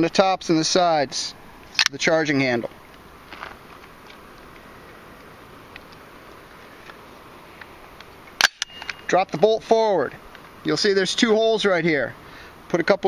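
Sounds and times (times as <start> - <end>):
rifle metallic click: 1.8 - 2.0, 8.4 - 9.1.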